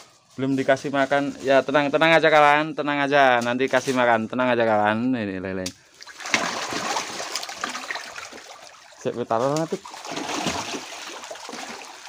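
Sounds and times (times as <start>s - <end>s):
catfish splashing at surface: 6.0s - 9.0s, 9.6s - 12.0s.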